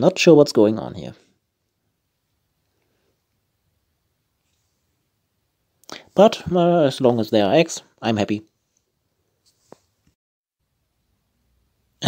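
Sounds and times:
man speaking: 0:00.0 - 0:01.3, 0:05.9 - 0:08.5.

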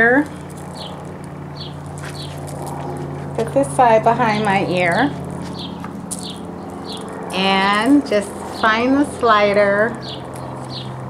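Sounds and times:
steady low hum: 0:00.0 - 0:11.0
small bird chirping: 0:00.4 - 0:01.0, 0:01.6 - 0:02.4, 0:05.5 - 0:07.2, 0:10.0 - 0:11.0.

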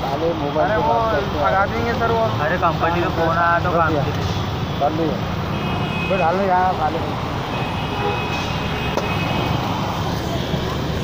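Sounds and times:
street traffic rumble: 0:00.0 - 0:11.0
faint voices: 0:09.6 - 0:11.0.

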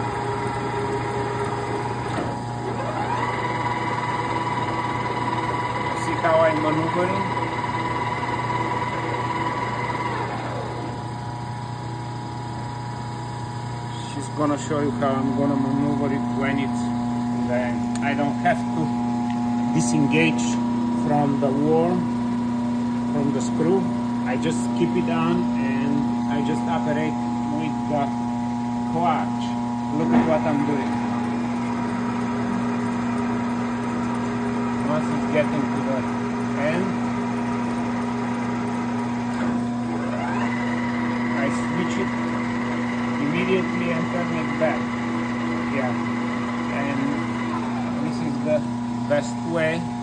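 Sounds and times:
lathe whine: 0:00.0 - 0:50.0
motor humming: 0:00.0 - 0:50.0.

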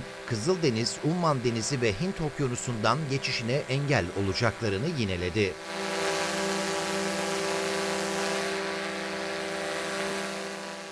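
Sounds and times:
steady machine drone: 0:00.0 - 0:10.9.

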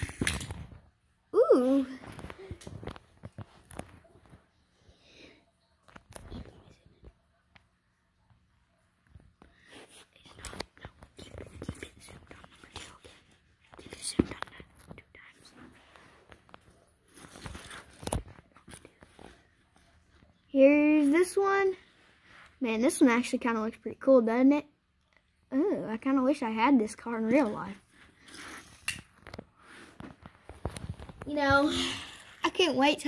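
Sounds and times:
toy cars handled: 0:00.0 - 0:00.8.

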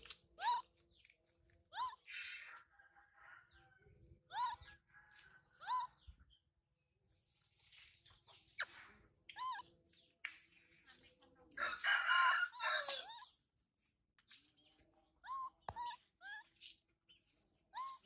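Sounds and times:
rooster crowing: 0:02.6 - 0:03.8, 0:11.6 - 0:13.2.

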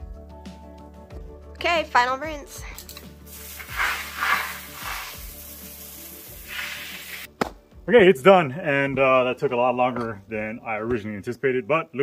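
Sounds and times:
water spraying from hose: 0:03.1 - 0:07.3.

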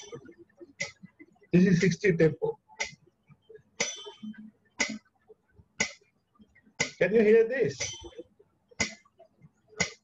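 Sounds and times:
metronome clicking: 0:03.8 - 0:05.0, 0:07.8 - 0:08.2, 0:08.8 - 0:09.0.

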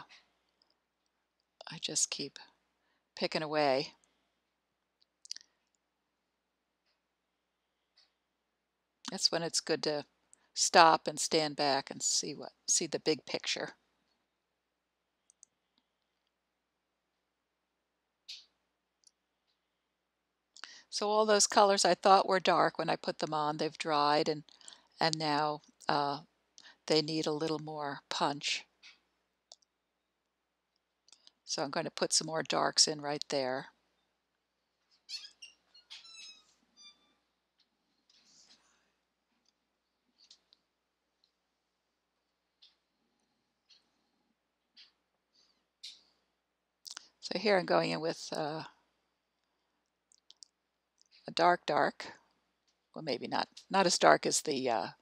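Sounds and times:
small faint clicks: 0:04.8 - 0:05.9, 0:15.2 - 0:16.4, 0:28.8 - 0:31.5, 0:37.5 - 0:41.4, 0:42.2 - 0:47.2, 0:49.4 - 0:51.3.

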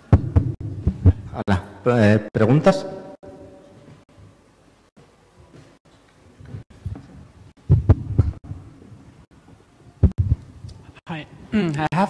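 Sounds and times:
man talking: 0:01.3 - 0:03.1
microphone being handled: 0:06.4 - 0:09.1, 0:10.0 - 0:10.9.

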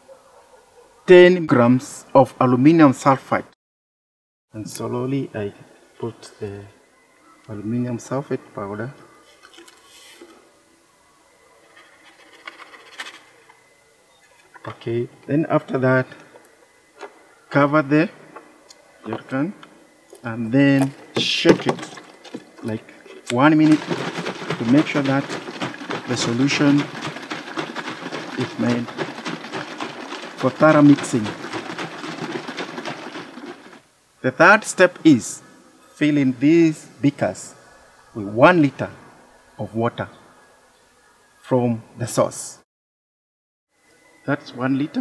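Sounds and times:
water sloshing in plastic jug: 0:20.6 - 0:33.8
powder pouring into bottle: 0:20.7 - 0:33.9.

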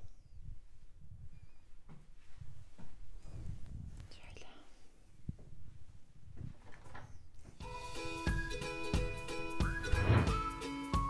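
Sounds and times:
faint whispered voice: 0:03.9 - 0:05.1
music with sustained tones: 0:07.6 - 0:11.0.

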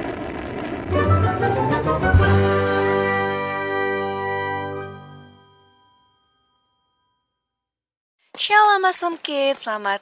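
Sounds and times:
bright ringing chord: 0:02.3 - 0:07.7.

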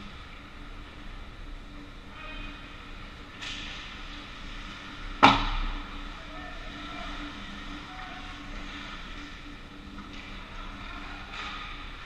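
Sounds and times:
indoor ice rink hum: 0:00.0 - 0:12.0.

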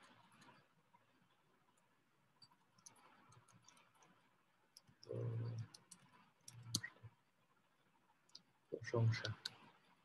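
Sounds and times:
mouse and keyboard clicks: 0:04.8 - 0:07.0.

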